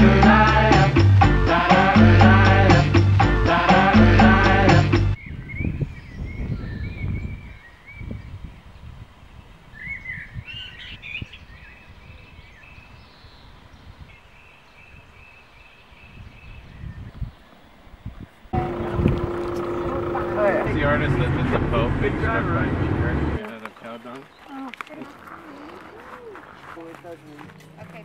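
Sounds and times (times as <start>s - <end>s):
birds chirping and trilling: 5.2s - 17.8s
low rumbling background: 18.6s - 23.4s
steady hum: 18.6s - 23.4s
voices: 18.6s - 28.0s.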